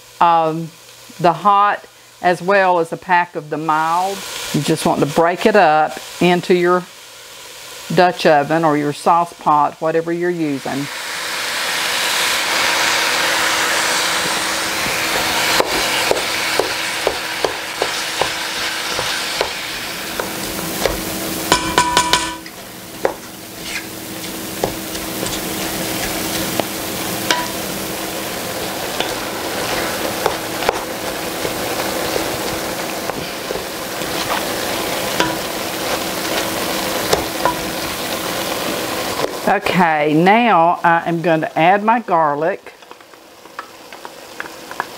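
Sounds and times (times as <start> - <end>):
meat sizzling in a pot: 0.0 - 44.9
wooden spoon scraping and knocking pot: 14.2 - 27.6, 28.8 - 39.4.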